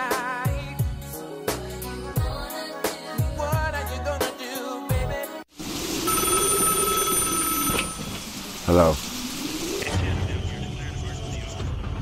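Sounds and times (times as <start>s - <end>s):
telephone ringing: 6.0s - 8.4s.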